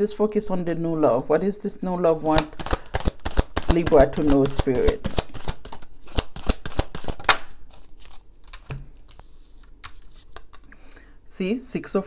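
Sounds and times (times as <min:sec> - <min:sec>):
cards being shuffled: 0:02.3 - 0:10.8.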